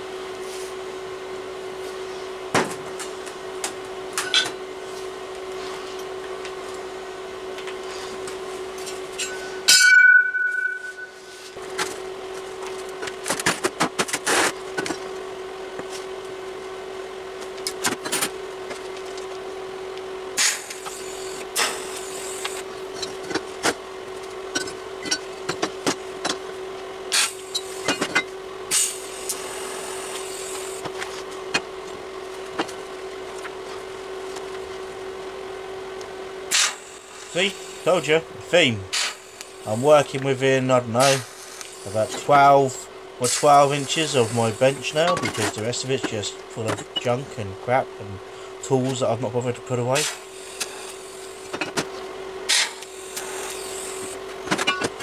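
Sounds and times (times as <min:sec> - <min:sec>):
steady hum: 0:00.0 - 0:54.8
ringing metal clang: 0:09.2 - 0:11.5.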